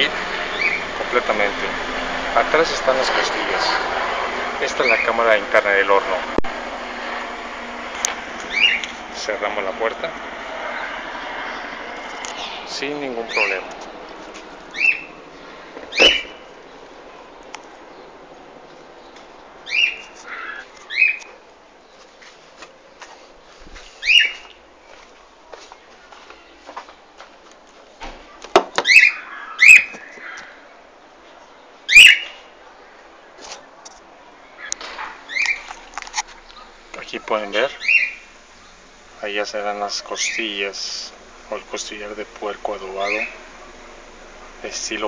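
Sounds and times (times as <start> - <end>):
bird chirping: 0.1 - 1.8, 4.6 - 5.4, 8.4 - 9.3, 10.7 - 22.1, 24.0 - 25.1, 28.8 - 30.5, 31.3 - 33.3, 34.4 - 45.0.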